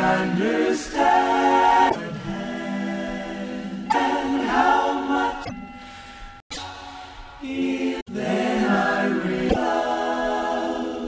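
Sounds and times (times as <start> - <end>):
vocal group singing in harmony: 0.0 - 11.0.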